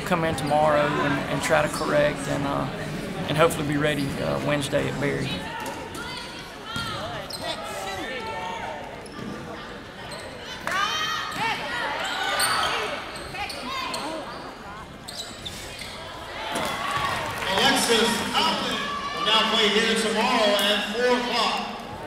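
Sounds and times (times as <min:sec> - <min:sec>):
voices shouting in a gym: 0:05.3 - 0:22.0
sneakers squeaking on hardwood: 0:12.3 - 0:16.0.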